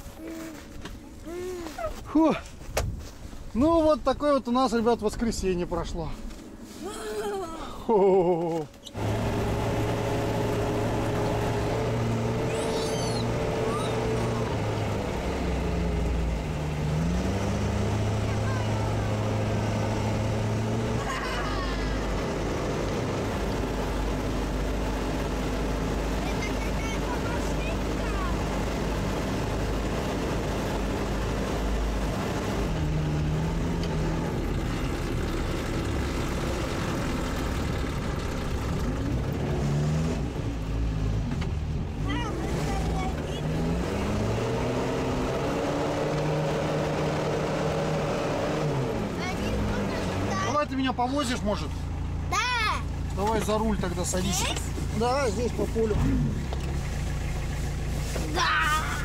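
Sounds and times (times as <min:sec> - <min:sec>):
diesel engine drone: 0:05.0 - 0:59.0.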